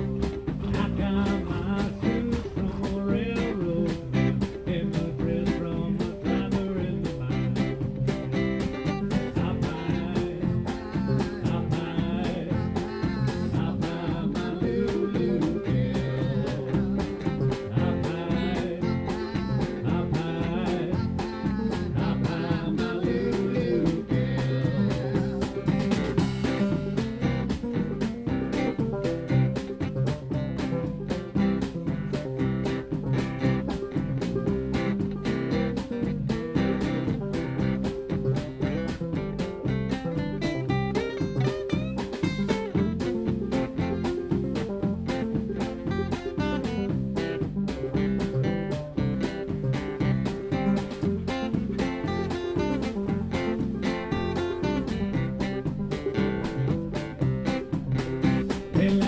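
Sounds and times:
acoustic guitar: 0.0s - 59.0s
drum kit steady beat: 0.0s - 59.0s
electric bass: 0.0s - 59.0s
electric guitar: 0.0s - 59.0s.

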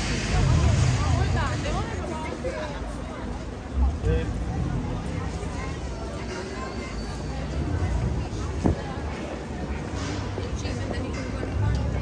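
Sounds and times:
steady low rumble: 0.0s - 6.1s
chatter of passers-by: 0.0s - 12.0s.

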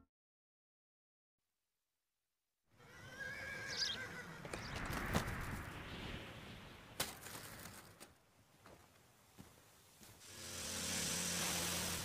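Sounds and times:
soft rural ambience: 2.7s - 12.0s
horse whinnying: 2.8s - 4.6s.

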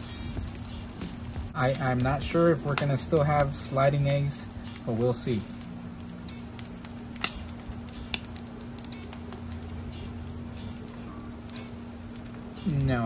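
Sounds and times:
egg sizzling in oil: 0.0s - 13.0s
steady low hum: 0.0s - 13.0s
sharp clicks: 4.6s - 12.9s.

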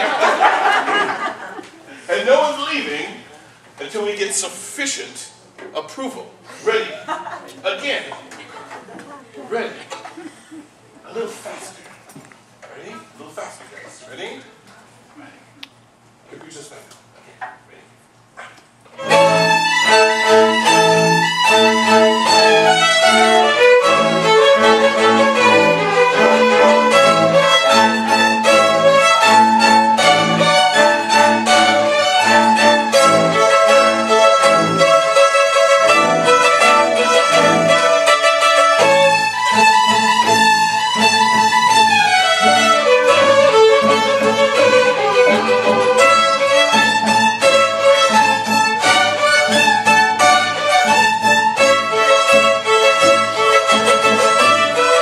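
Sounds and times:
string orchestra playing: 19.0s - 55.0s.

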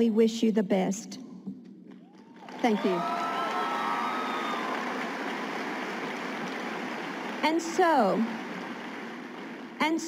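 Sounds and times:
audience applauding: 2.2s - 9.9s
audience cheering: 2.4s - 9.6s.

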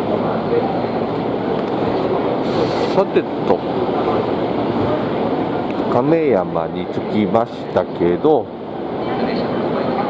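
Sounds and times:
short hiss: 2.4s - 3.0s.

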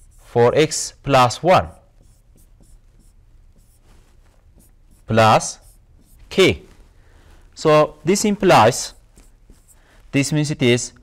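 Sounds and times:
stylus scratching on tablet: 0.0s - 6.7s, 8.0s - 10.4s.

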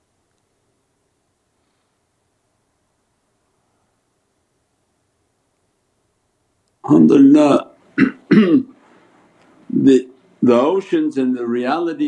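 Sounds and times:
man making wordless vocal sounds: 6.8s - 8.7s, 9.7s - 10.8s.

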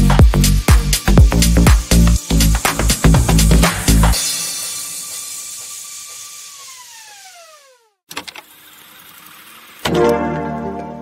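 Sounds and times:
falling-pitch tone: 1.4s - 5.6s
plucked-string background music: 9.9s - 11.0s.

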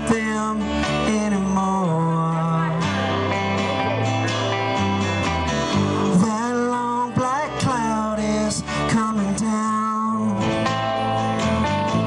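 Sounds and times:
bending sliding guitar lead: 0.0s - 12.0s
country-rock band playing: 0.0s - 12.0s.

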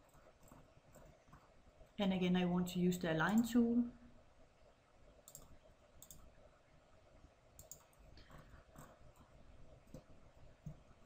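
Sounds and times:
faint computer mouse clicks: 5.2s - 6.3s, 7.6s - 8.9s.

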